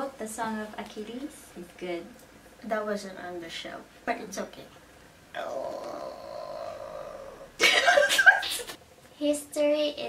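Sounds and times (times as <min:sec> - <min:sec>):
loud laughter: 0:07.6 - 0:08.8.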